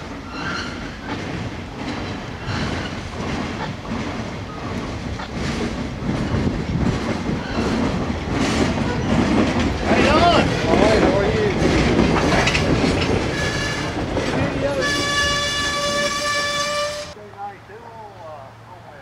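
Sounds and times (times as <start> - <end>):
wheels clicking over rail joints: 0.0 - 17.2
freight train rolling past: 0.0 - 17.6
train wheel squeals: 0.2 - 1.2, 2.4 - 3.1, 7.3 - 9.4, 12.2 - 17.2.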